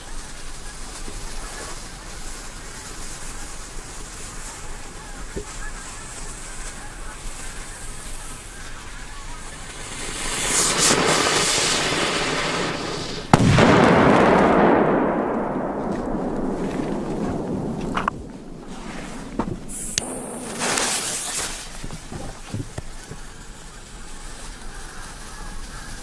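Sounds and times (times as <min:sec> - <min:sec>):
firecracker fuse hissing: 0:00.0 - 0:14.2, 0:14.8 - 0:26.0
firecracker bang: 0:09.4 - 0:23.2.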